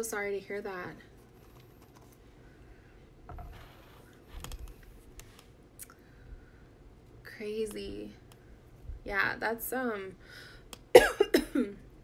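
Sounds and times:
woman coughing: 10.9 - 11.8.

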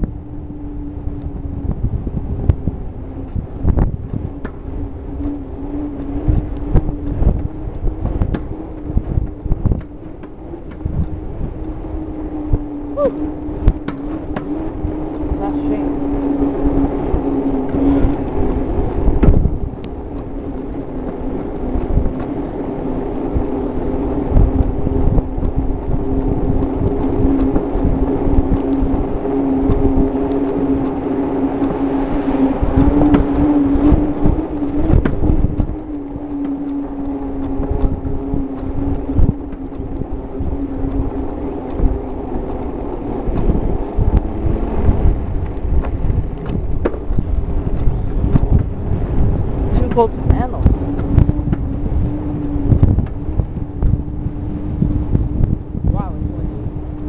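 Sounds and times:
bike tyres humming: 0.0 - 57.0
thumps and rattles from road: 19.0 - 20.3, 41.6 - 48.8.

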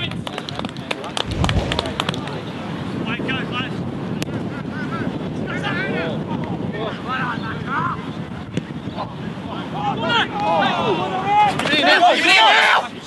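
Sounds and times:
wind buffeting microphone: 0.1 - 11.3.

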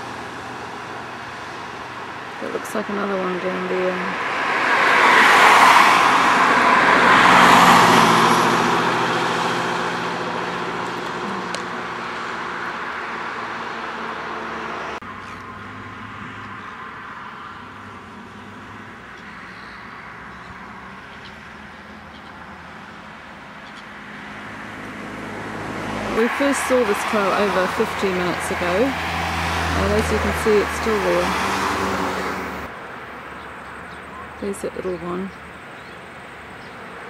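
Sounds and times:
steady traffic noise: 0.0 - 37.0
vehicle passing close by: 0.0 - 37.0.

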